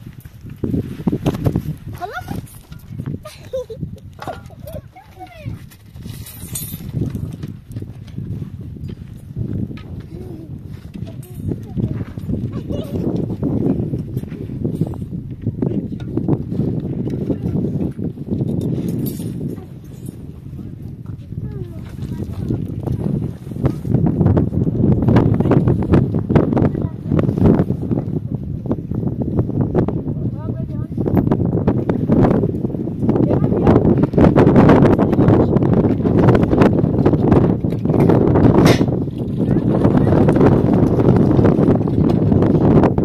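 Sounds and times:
people talking and calling: 0:02.0 - 0:05.8, 0:10.0 - 0:15.0.

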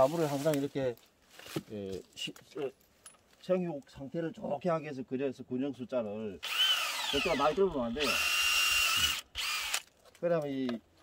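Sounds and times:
cordless drill boring into wood: 0:06.4 - 0:09.9.

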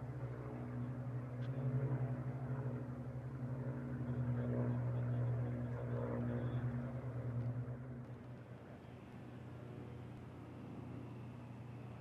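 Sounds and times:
propeller plane flying overhead: 0:00.0 - 0:12.0.

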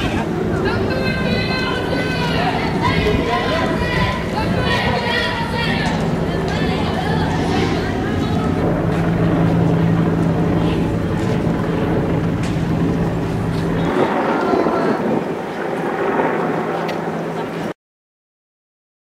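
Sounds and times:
voices and shouts: 0:00.0 - 0:12.8, 0:13.6 - 0:15.7.

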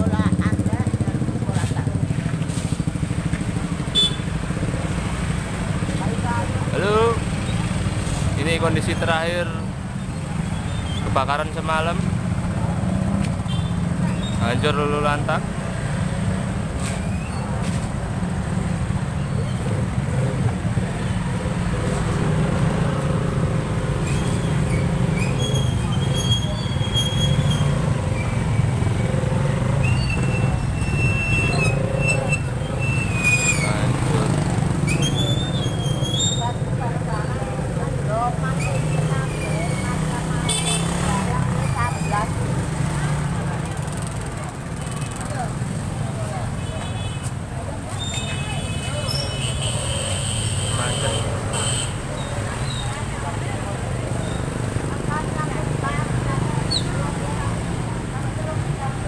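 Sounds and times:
people talking: 0:00.0 - 0:02.3, 0:05.9 - 0:07.2, 0:33.5 - 0:34.5, 0:36.4 - 0:59.0
motorcycles passing: 0:00.0 - 0:59.0.

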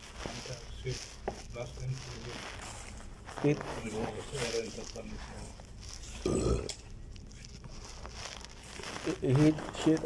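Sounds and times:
person burping: 0:06.2 - 0:06.8.

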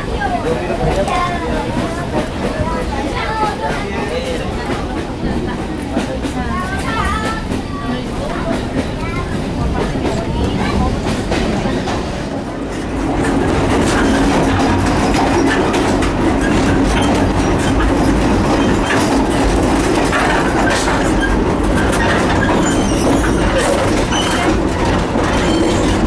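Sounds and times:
train coach rumble and rattle: 0:00.0 - 0:26.0
wheels clattering over rails: 0:00.0 - 0:26.0.

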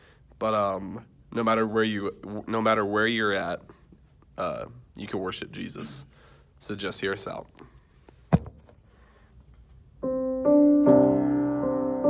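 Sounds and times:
piano playing sustained chords: 0:10.0 - 0:12.0.

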